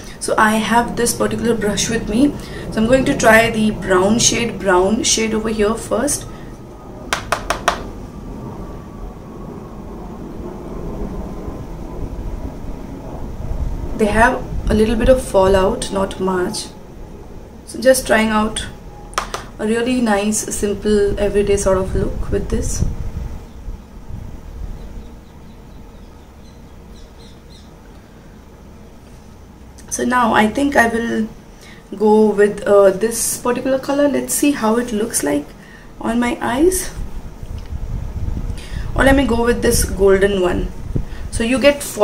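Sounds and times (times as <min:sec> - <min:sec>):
low rumbling background noise: 0:00.0 - 0:42.0
bird chirping: 0:23.5 - 0:28.0.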